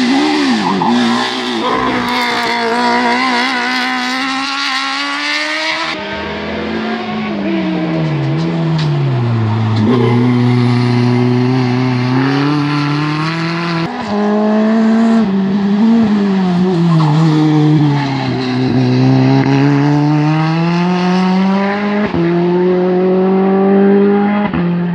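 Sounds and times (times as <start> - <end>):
race car engine revving: 0.0 - 24.9.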